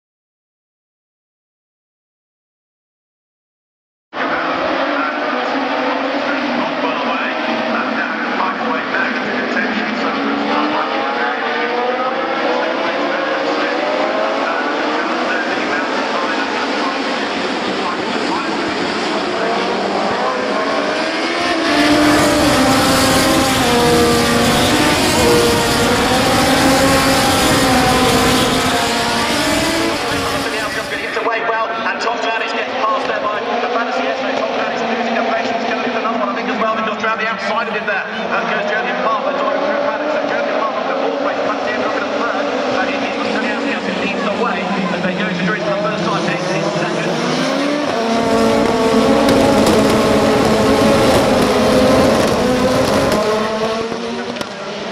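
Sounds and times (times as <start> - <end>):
racing car engines revving: 4.2 - 54.9.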